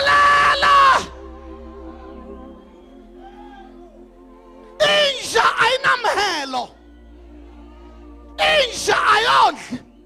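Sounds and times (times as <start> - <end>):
soft sustained music chords: 0.0 - 10.0.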